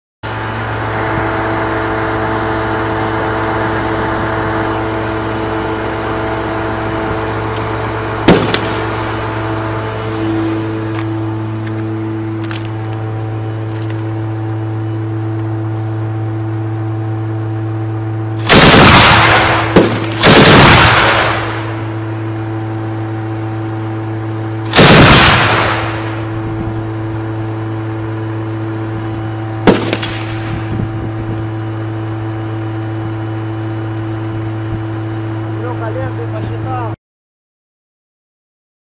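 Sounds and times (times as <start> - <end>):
vehicle engine running: 0.2 - 37.0
machine gun bursts: 18.4 - 21.6, 24.7 - 26.0.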